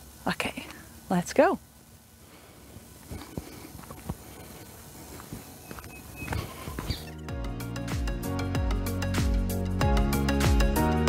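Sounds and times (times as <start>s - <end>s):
footsteps on dirt: 2.8s - 7.2s.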